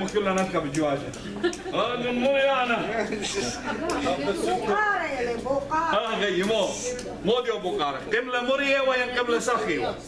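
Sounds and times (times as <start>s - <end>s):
people talking in a large room: 0.0s - 10.0s.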